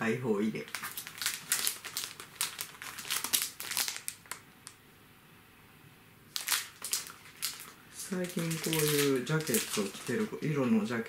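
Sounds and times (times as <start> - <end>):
plastic wrapping crinkling: 0.6 - 4.8, 6.3 - 10.9.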